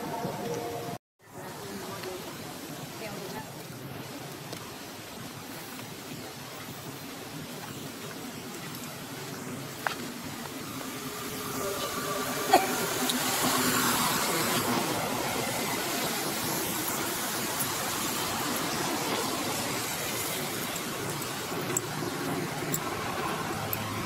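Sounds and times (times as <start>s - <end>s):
rushing outdoor hiss: 0.0s - 24.0s.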